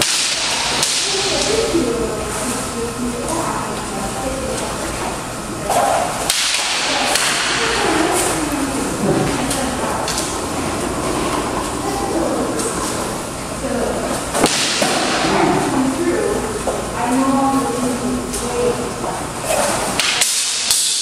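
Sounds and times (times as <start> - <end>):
sharp clack of swords: 6.3 - 7.5, 20.0 - 21.0.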